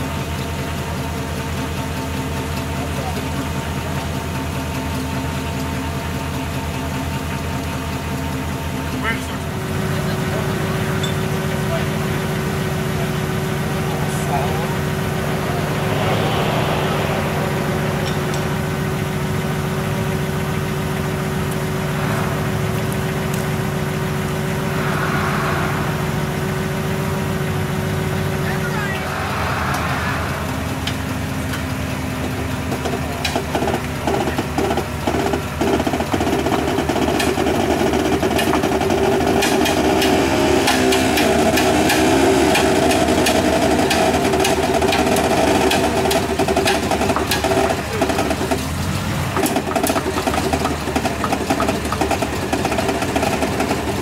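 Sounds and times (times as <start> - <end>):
truck engine idling: 0.0 - 54.0.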